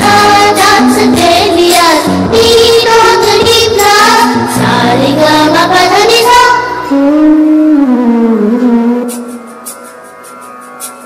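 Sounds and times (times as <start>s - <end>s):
children's song singing: 0.0s - 7.2s
backing track with steady beat: 0.0s - 11.0s.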